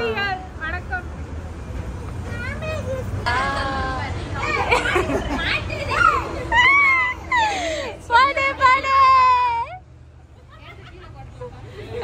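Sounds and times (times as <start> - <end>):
group calling out and laughing: 2.8 - 12.0.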